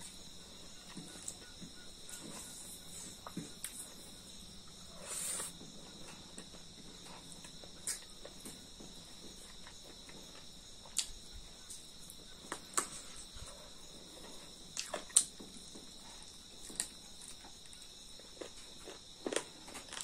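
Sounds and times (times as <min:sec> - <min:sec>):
crickets chirring: 0:00.0 - 0:20.0
clicks and smacks of eating: 0:07.2 - 0:13.0, 0:14.7 - 0:20.0.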